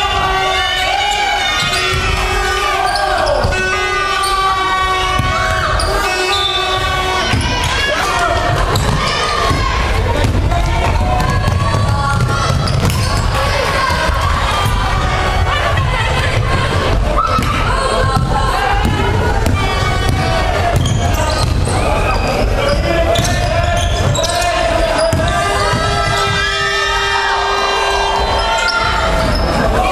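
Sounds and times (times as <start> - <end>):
players and spectators calling: 0.0 - 29.9
basketball bouncing on wooden court: 5.1 - 5.8, 8.5 - 14.2, 17.3 - 21.8, 22.7 - 24.4, 25.0 - 26.4.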